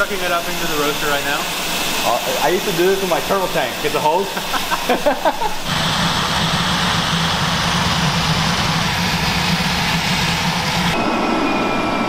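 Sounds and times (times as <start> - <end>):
vacuum loader hum and hiss: 0.0 - 12.0
burst of laughter: 4.3 - 5.7.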